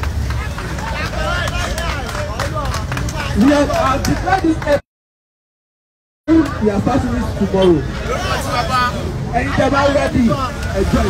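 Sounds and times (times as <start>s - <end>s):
traffic rumble: 0.0s - 4.8s, 6.3s - 11.0s
voices talking: 0.0s - 4.8s, 6.3s - 11.0s.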